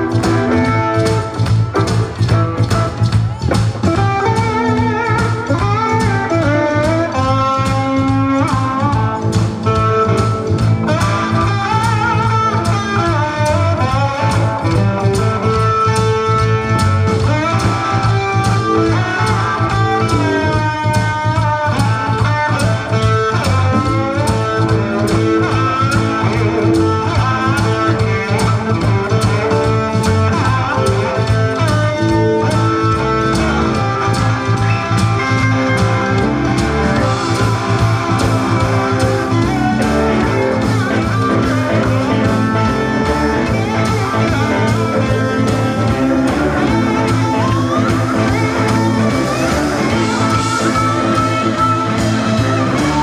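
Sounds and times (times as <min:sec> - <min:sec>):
blues band playing: 0:00.0 - 0:53.0.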